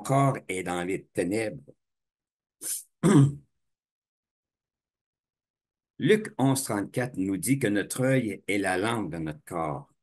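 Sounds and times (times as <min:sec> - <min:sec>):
man coughing: 0:03.0 - 0:03.5.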